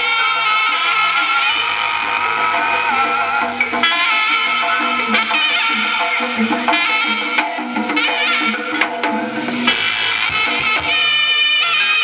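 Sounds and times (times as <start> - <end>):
ensemble accompaniment music: 0.0 - 11.9
held melody line: 0.0 - 12.0.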